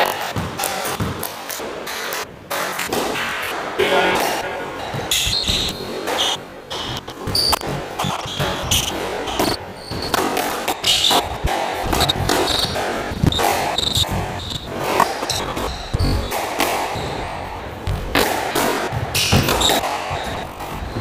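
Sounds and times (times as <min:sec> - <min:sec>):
shoes squeaking on wooden floor: 0:04.2 - 0:18.2, 0:18.9 - 0:21.0
squash ball cracking off rackets: 0:04.8 - 0:21.0.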